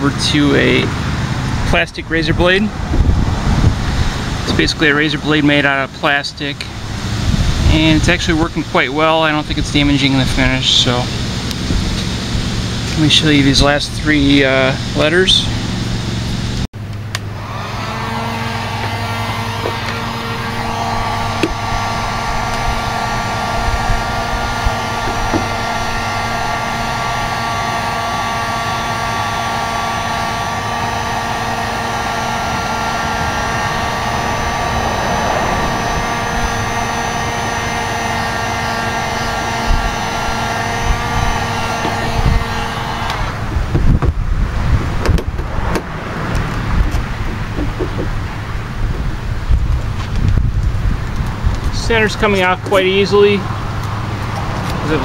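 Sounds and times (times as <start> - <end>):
heat gun fan and motor hum: 0.0 - 55.0
wind on microphone: 1.5 - 4.8, 6.8 - 8.5, 17.5 - 27.6, 30.5 - 38.4, 39.1 - 52.6.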